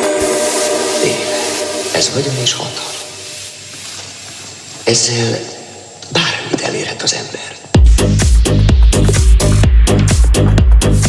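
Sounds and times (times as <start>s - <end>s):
noisy rubbing texture: 0.0s - 5.5s
voice snippet: 0.9s - 3.3s
minimal techno track: 7.7s - 11.0s.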